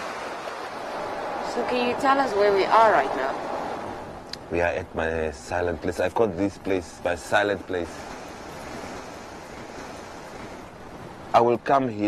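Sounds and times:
sea waves: 0.0 - 12.0
wind: 0.0 - 12.0.

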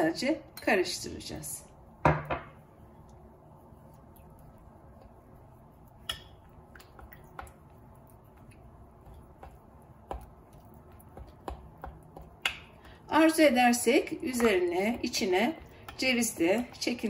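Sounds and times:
spoon stirring thick paste: 3.0 - 17.0.

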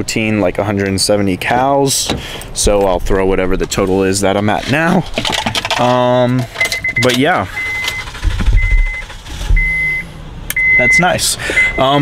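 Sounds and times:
low thuds: 2.0 - 5.2, 8.1 - 10.0
car warning chime beeping: 6.5 - 12.0.

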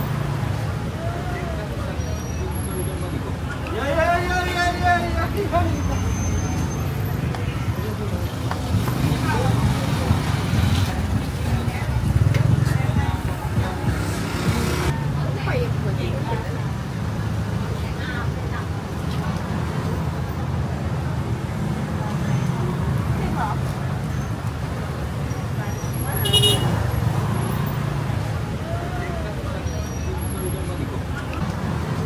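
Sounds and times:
passing vehicle engines: 0.0 - 32.0
voices of people: 0.0 - 32.0.

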